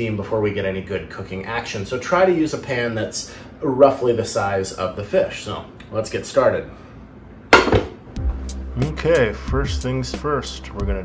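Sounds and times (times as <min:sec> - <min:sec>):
frying pan clanking down: 0:07.5 - 0:08.0
background music with low bass: 0:08.0 - 0:11.0.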